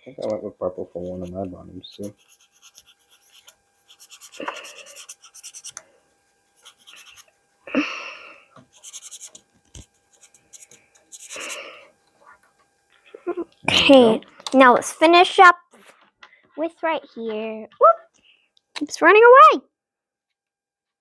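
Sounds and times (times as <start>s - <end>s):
felt-tip markers scribbling: 1.0s - 5.8s, 6.6s - 7.3s, 8.7s - 11.6s.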